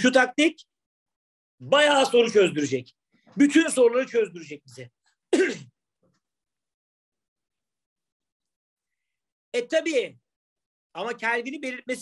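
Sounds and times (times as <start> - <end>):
man clearing his throat: 5.3 - 5.8.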